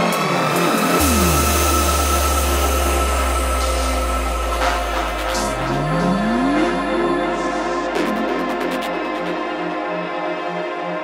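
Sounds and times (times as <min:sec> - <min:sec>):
falling synth sweeps: 0:00.4 - 0:09.7
steady high synth tone: 0:00.4 - 0:09.8
long held bass note: 0:00.8 - 0:09.4.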